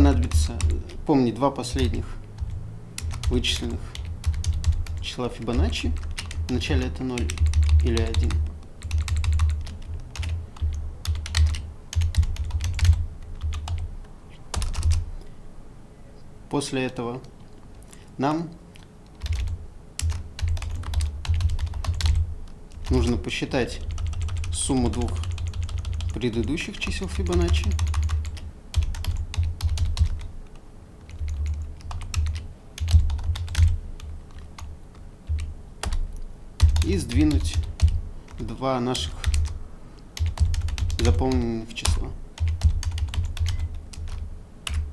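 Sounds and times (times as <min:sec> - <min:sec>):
typing on computer keyboard: 0:00.0 - 0:01.0, 0:01.8 - 0:13.9, 0:14.5 - 0:15.0, 0:18.8 - 0:23.2, 0:23.8 - 0:30.3, 0:31.0 - 0:38.5, 0:39.2 - 0:39.6, 0:40.2 - 0:44.9.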